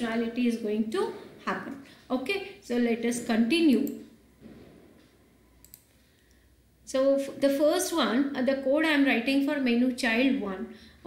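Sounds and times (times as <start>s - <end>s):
computer mouse clicks: 3.8s - 4.2s, 5.6s - 6.4s.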